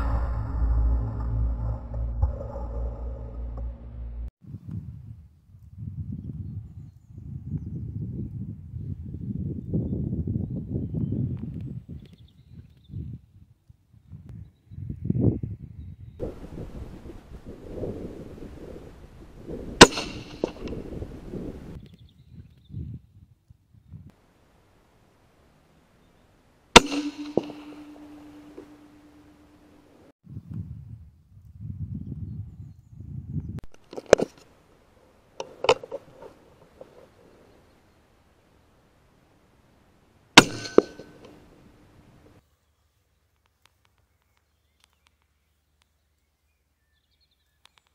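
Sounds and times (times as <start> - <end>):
low thud: 0.0 - 4.3
ringing tail: 0.0 - 4.3, 26.8 - 30.1, 40.4 - 41.7
suppressed rifle shot: 19.8 - 21.1, 26.8 - 29.4.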